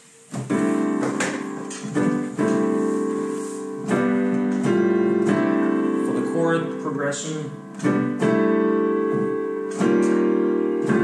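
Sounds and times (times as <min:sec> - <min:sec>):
piano playing slow chords: 0:00.0 - 0:11.0.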